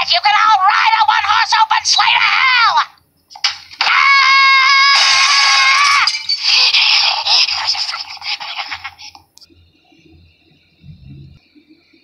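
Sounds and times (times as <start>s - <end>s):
woman screaming: 3.8s - 6.2s
crashing and breaking: 4.7s - 7.0s.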